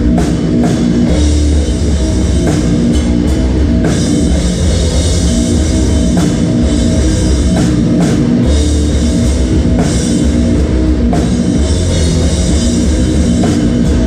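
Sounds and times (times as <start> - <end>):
distorted guitars and bass: 0.0 - 14.0
drum kit with cymbal crashes: 0.0 - 14.0.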